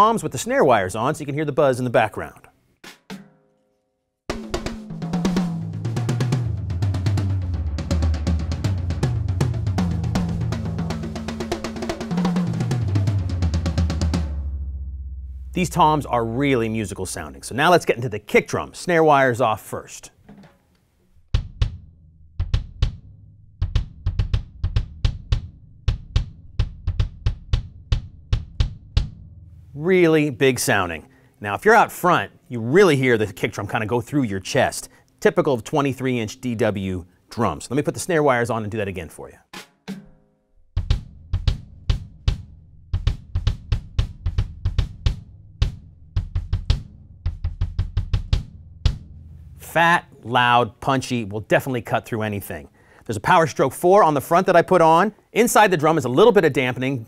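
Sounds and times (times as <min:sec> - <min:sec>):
kick drum thumps: 0:21.3 - 0:29.4, 0:40.8 - 0:49.3.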